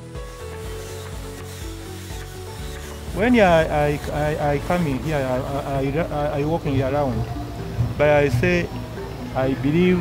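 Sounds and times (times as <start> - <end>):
angle grinder grinding wood: 0.0 - 8.0
background music: 0.0 - 10.0.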